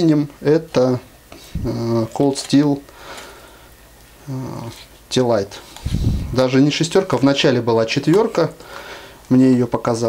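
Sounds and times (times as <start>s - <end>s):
man humming mmm: 4.2s - 4.8s.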